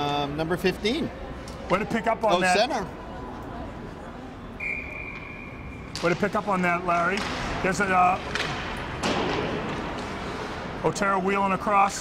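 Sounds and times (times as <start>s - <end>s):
hall background noise: 0.0s - 12.0s.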